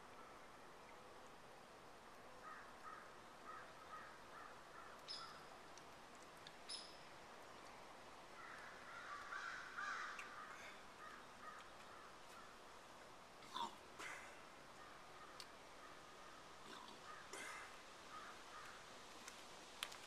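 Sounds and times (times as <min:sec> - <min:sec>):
faint birds calling: 0:02.3 - 0:05.7, 0:06.6 - 0:18.9.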